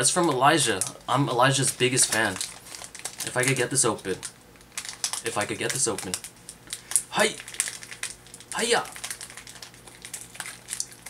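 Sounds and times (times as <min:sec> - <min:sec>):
foil wrapper crinkling: 0:00.0 - 0:11.0.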